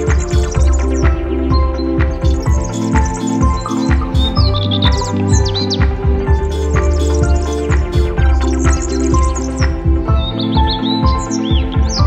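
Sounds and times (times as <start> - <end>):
background music with steady beat: 0.0 - 12.0
high bird-like chirps: 0.0 - 12.0.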